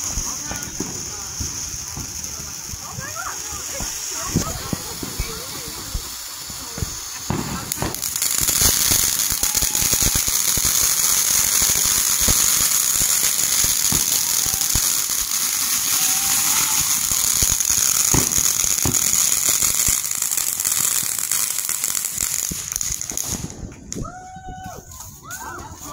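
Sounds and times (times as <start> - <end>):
firework crackling: 0.0 - 25.9
firework fountain hissing: 0.0 - 25.9.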